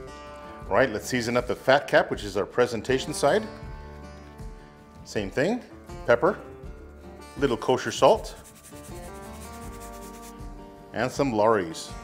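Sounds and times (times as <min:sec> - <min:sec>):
quiet background music: 0:00.0 - 0:12.0
salt sprinkled onto meat: 0:06.6 - 0:10.4.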